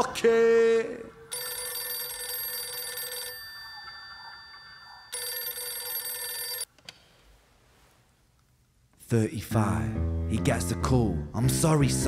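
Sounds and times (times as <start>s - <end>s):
telephone ringing: 1.3s - 6.7s.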